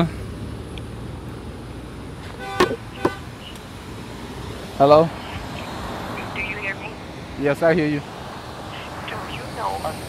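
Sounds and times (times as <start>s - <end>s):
street traffic hum: 0.0s - 10.0s
car horn toots: 2.4s - 3.4s.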